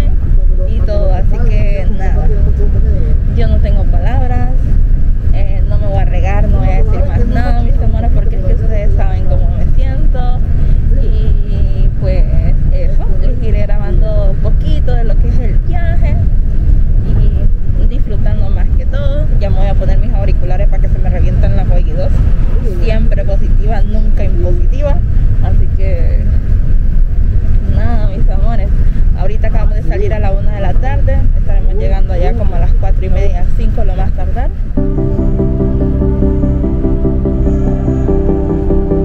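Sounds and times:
people talking indistinctly: 0:00.0 - 0:16.4, 0:17.0 - 0:26.4, 0:27.6 - 0:37.8
bus engine and road noise: 0:00.0 - 0:39.0.

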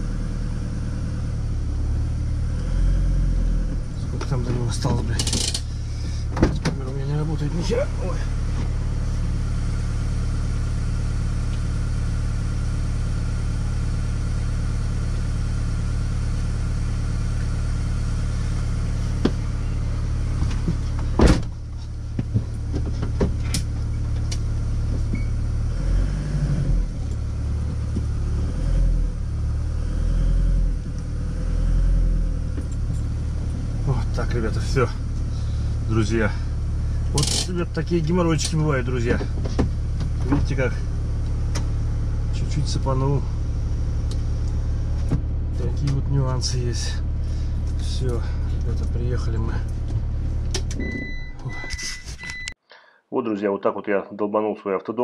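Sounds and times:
engine running at low revs: 0:00.0 - 0:52.5.

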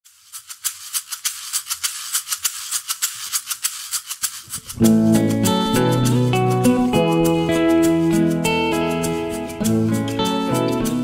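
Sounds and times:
percussion shaker rhythm: 0:00.1 - 0:11.0.

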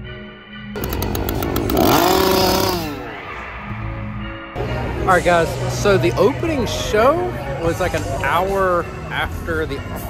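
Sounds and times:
background music: 0:00.0 - 0:10.0
small engine revving: 0:00.8 - 0:03.1.

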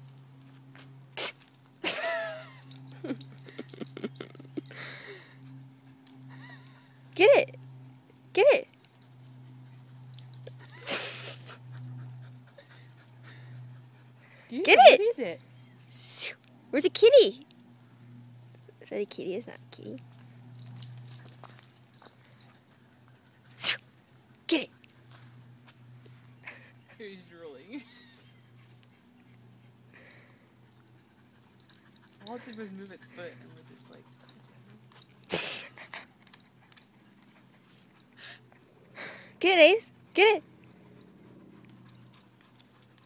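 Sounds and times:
low background hum: 0:00.0 - 0:43.0
woman shouting: 0:08.4 - 0:08.7, 0:14.6 - 0:15.1, 0:39.4 - 0:40.4
dog paws ticking on dirt: 0:17.3 - 0:29.9, 0:30.6 - 0:38.8, 0:40.6 - 0:43.0.

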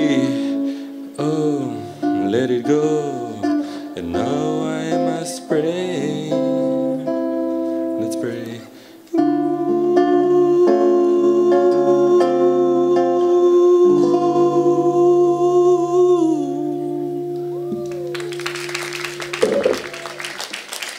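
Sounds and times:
man singing: 0:00.0 - 0:07.2, 0:07.8 - 0:17.2
acoustic guitar strumming: 0:00.0 - 0:20.0.

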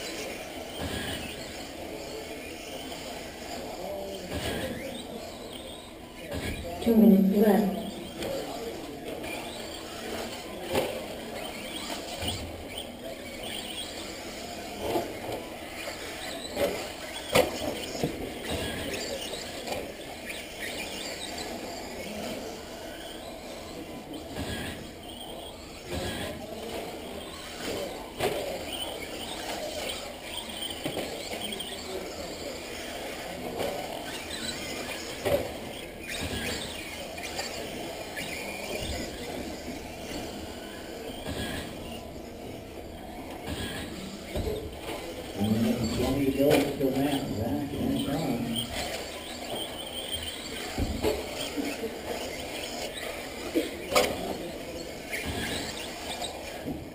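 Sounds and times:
rc car motors whining: 0:00.0 - 0:56.9.

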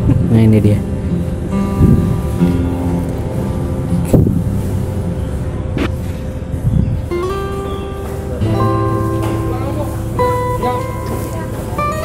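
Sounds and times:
low rumble: 0:00.0 - 0:07.1
soft background music: 0:00.0 - 0:12.0.

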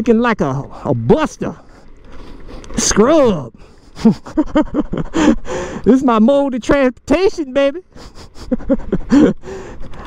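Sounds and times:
man laughing: 0:03.6 - 0:05.7, 0:07.8 - 0:09.6
breathy exhale: 0:05.2 - 0:05.8, 0:09.4 - 0:10.0.

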